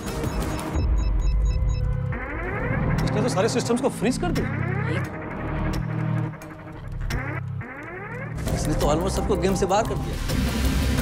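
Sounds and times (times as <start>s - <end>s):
high electronic blips: 0.1s - 8.8s
deep bass drone: 0.8s - 9.3s
rising synth sweep: 1.7s - 8.5s.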